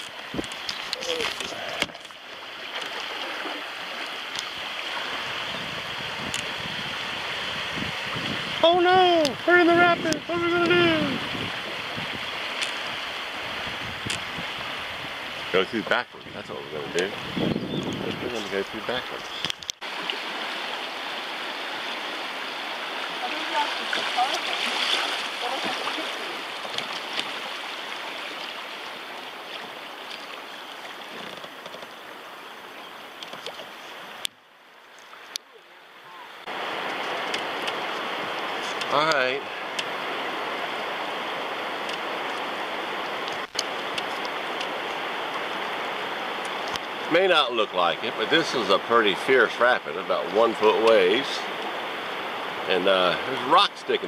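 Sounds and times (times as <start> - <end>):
water rushing over rocks: 0.0 - 54.0.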